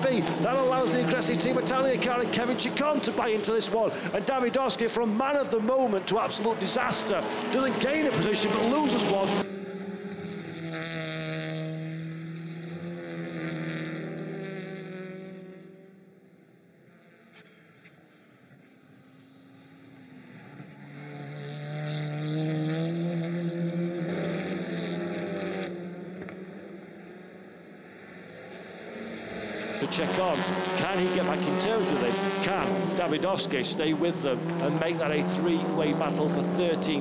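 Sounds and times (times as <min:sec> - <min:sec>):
racing car engines: 0:00.0 - 0:37.0.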